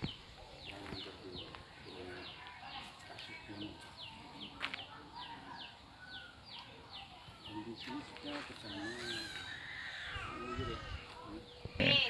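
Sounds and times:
bird chirping: 0:00.0 - 0:12.0
faint background voices: 0:00.0 - 0:12.0.

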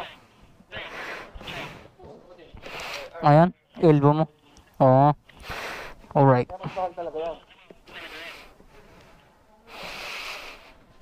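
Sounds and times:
faint background voices: 0:00.0 - 0:11.0
soft breathy hiss: 0:02.6 - 0:03.2, 0:04.4 - 0:07.2, 0:07.9 - 0:11.0.

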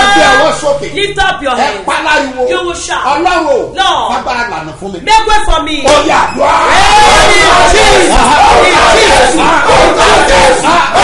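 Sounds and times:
crowd shouting together: 0:00.0 - 0:00.6, 0:05.9 - 0:11.0.

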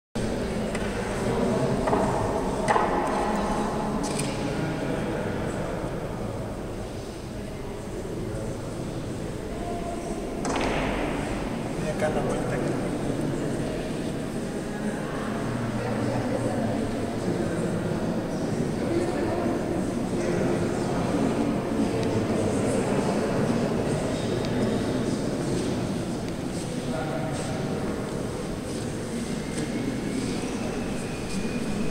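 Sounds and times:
echoing hall murmur: 0:00.2 - 0:31.9.

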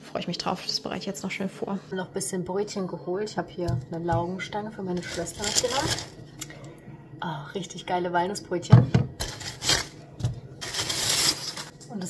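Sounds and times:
paper bag rustling: 0:05.0 - 0:06.2, 0:09.2 - 0:10.0, 0:10.6 - 0:11.7.

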